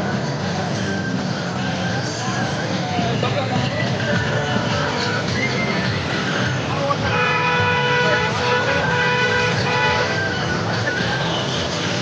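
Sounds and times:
crowd voices: 0.0s - 12.0s
vehicle engine noise: 0.0s - 12.0s.

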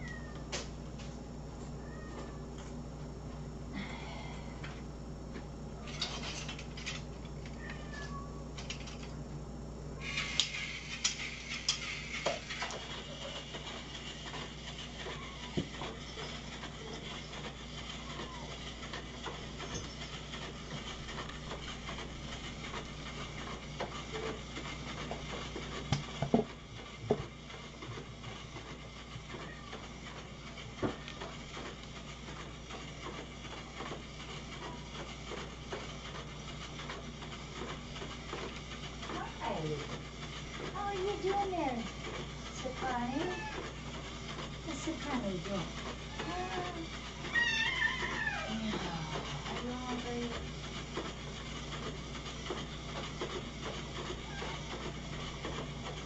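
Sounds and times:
steady room hum: 0.0s - 56.0s.

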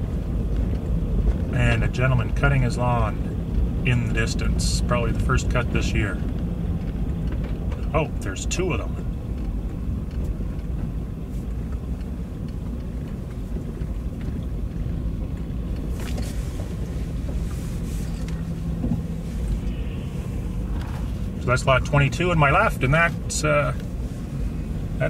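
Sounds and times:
vehicle driving on dirt road: 0.0s - 25.0s.

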